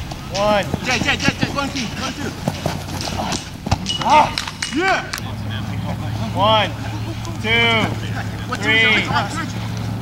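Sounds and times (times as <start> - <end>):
faint voices calling: 0.0 - 10.0
footsteps running on grass: 0.2 - 3.8.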